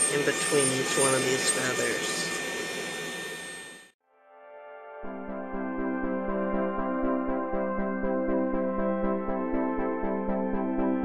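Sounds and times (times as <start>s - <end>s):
dust collector hum: 0.0s - 3.8s
power carving tool whine: 0.0s - 4.0s.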